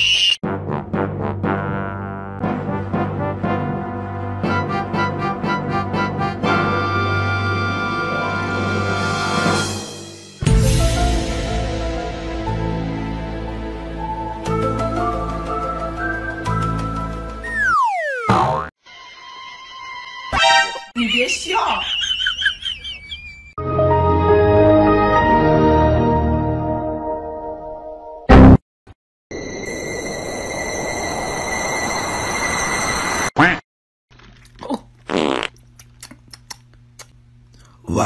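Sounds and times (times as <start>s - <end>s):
whistle sliding down in pitch: 0.0s - 0.4s
boing hit: 17.5s - 18.7s
fart sound: 17.6s - 18.7s, 35.1s - 35.6s.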